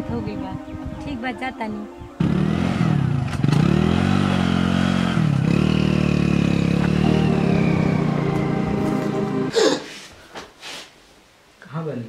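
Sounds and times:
motorcycle engine accelerating: 2.2s - 9.5s.

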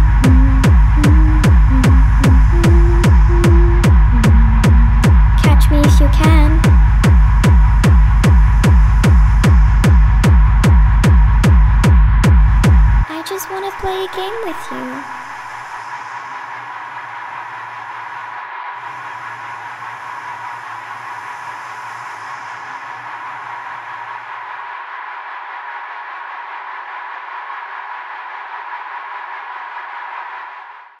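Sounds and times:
low hum: 0.0s - 13.1s
noisy electronic drone: 0.0s - 13.1s, 14.3s - 29.7s.

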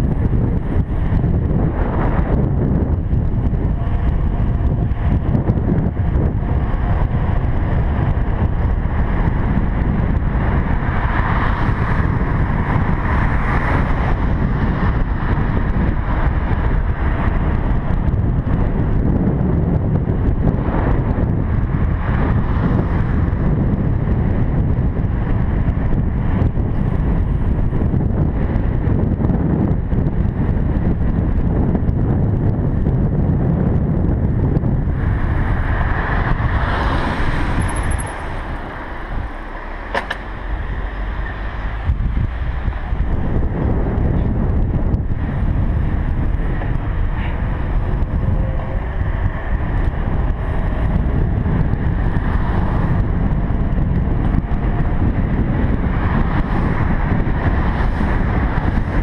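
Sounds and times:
wind rumbling on microphone: 0.0s - 59.0s.

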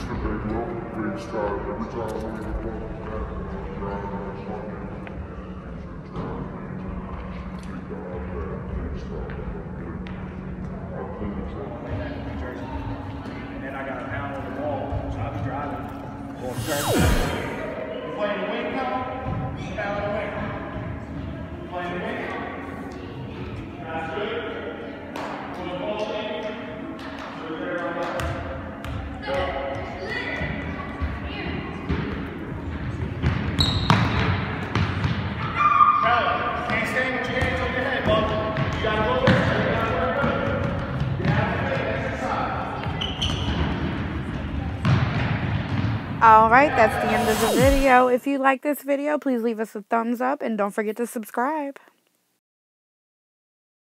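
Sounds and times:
soccer ball kicked and bouncing: 33.2s - 35.3s, 38.1s - 39.4s, 44.8s - 46.0s
indistinct voices: 46.5s - 48.8s.

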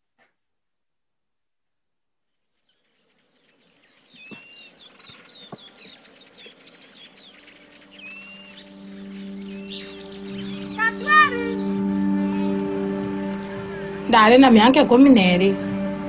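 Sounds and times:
bird chirps: 2.5s - 16.0s
insect drone: 2.6s - 16.0s
background music: 7.5s - 16.0s.

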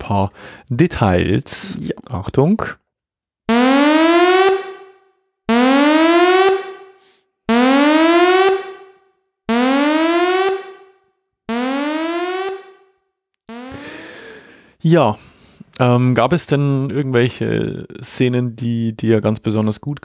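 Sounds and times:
rising electronic alarm tones: 3.5s - 10.9s, 11.5s - 12.9s, 13.5s - 14.1s.

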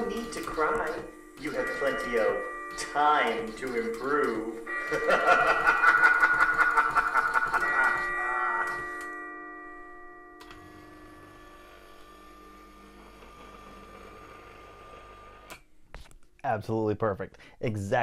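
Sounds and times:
steady ringing tones: 0.0s - 15.4s
long recorded laugh: 4.8s - 8.1s.

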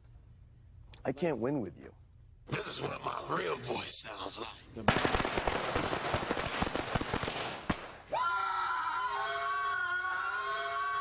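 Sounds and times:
automatic rifle gunfire: 4.9s - 8.0s.

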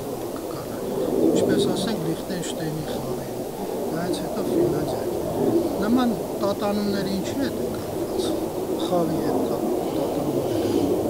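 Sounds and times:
pigeon cooing: 0.0s - 11.0s
man's voice: 0.4s - 3.4s, 5.8s - 10.8s.

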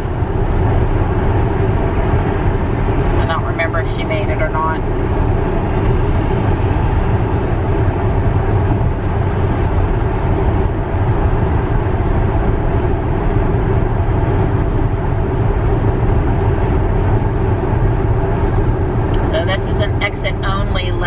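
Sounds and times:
road and tyre noise in car cabin: 0.0s - 21.0s.

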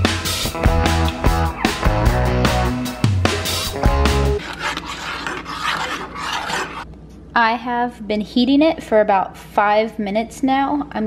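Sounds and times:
rock music with guitar: 0.0s - 4.4s
metal spoon stirring in saucepan: 3.3s - 6.9s.

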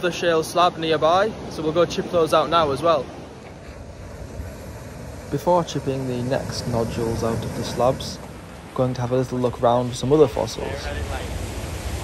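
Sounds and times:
wind: 0.0s - 12.0s
wind buffeting microphone: 1.2s - 12.0s.

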